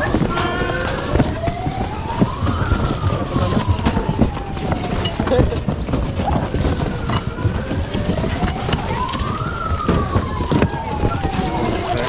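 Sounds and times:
boxes shoved and knocked about: 0.0 - 12.0
crowd rumble: 0.0 - 12.0
siren-like tone: 0.0 - 12.0.

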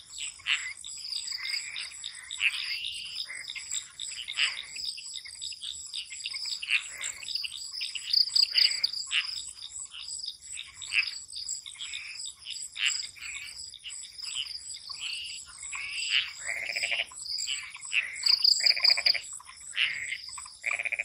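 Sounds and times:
frogs calling: 0.0 - 21.0
crickets trilling: 0.1 - 21.0.

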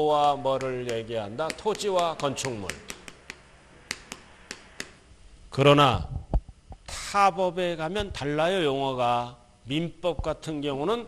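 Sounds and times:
chalk tapping on chalkboard: 0.2 - 5.0.

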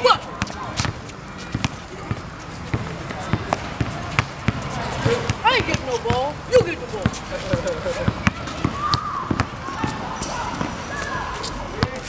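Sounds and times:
basketball bouncing on hard court: 0.4 - 10.0, 11.8 - 12.0.

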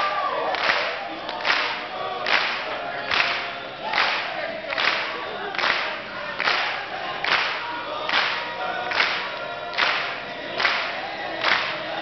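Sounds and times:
soloist singing: 0.0 - 12.0
men's a cappella group singing: 0.4 - 12.0
sharp hand claps: 0.5 - 11.9.

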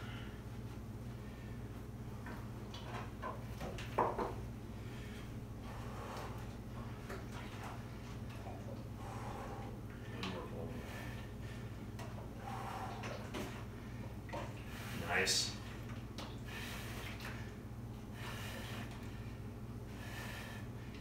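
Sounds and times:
faint breaths: 0.0 - 2.4, 4.7 - 21.0
steady low hum: 0.0 - 21.0
small movement noises: 0.1 - 21.0.

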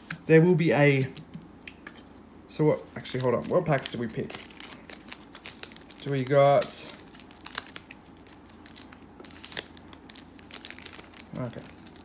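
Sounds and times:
foil wrappers crinkling: 3.0 - 12.0.

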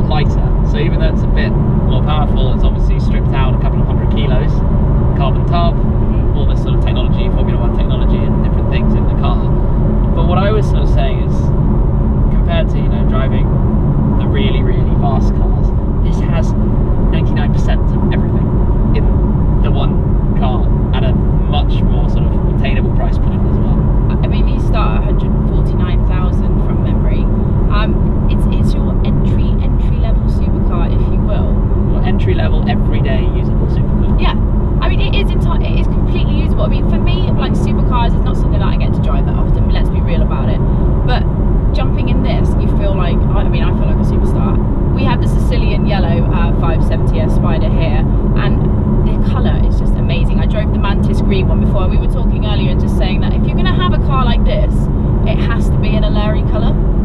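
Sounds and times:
people talking: 0.0 - 4.6, 5.2 - 9.5, 10.1 - 11.5, 12.3 - 13.5, 14.2 - 41.2, 41.8 - 56.7
car engine and road noise: 0.0 - 57.0.

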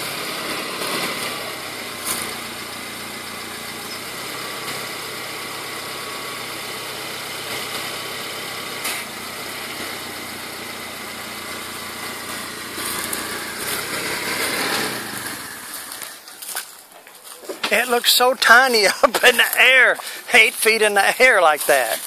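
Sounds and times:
forklift engine running: 0.0 - 22.0.

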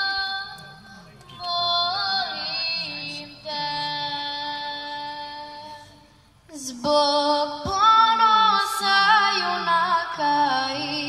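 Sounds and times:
woman singing through sound system: 0.0 - 11.0.

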